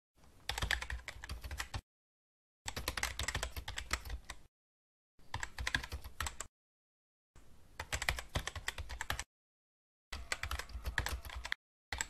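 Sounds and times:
rapid keyboard typing: 0.4 - 1.8, 2.7 - 4.5, 5.2 - 6.5, 7.8 - 9.3, 10.1 - 12.0.

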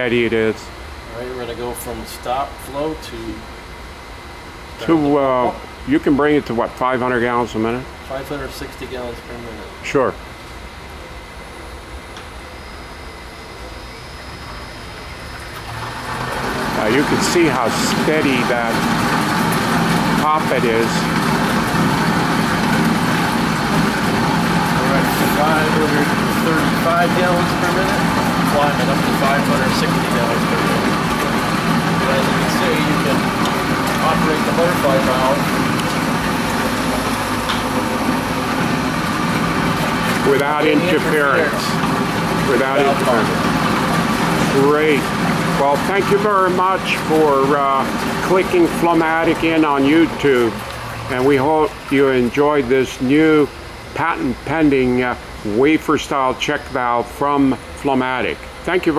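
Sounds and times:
water rushing through piping: 15.4 - 53.6.

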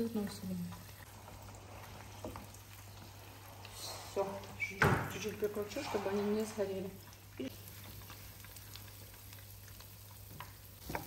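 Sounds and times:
oil sizzling with crackles: 0.0 - 11.0.

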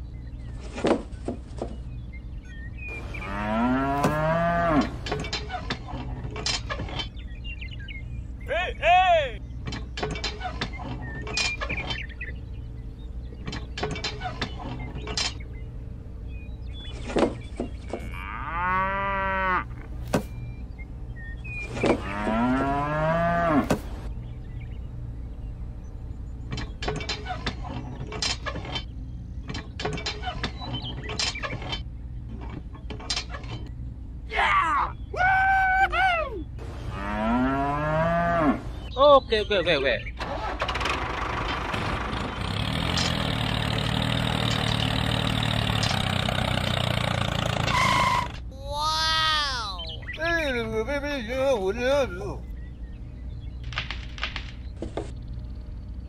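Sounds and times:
steady low hum: 0.0 - 28.2, 49.8 - 56.0
cow mooing: 3.1 - 5.0, 18.0 - 19.8, 22.0 - 23.7, 36.9 - 38.7.

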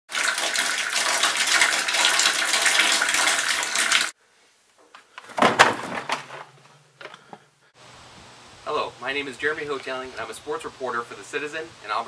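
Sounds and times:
tap water running into plastic bin: 0.1 - 4.1.

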